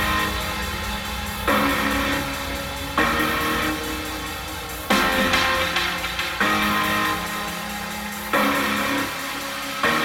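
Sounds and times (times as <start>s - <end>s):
music with chords and drums: 0.0s - 10.0s.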